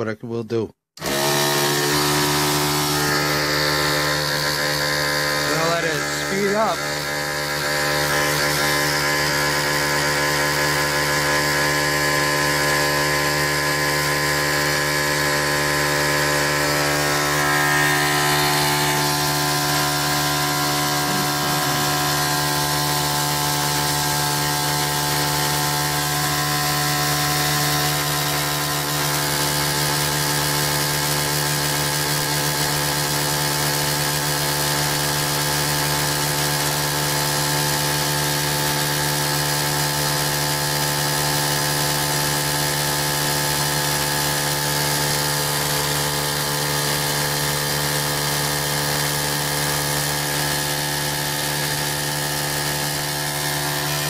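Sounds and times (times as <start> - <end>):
small electric motor whining: 1.0 - 54.0.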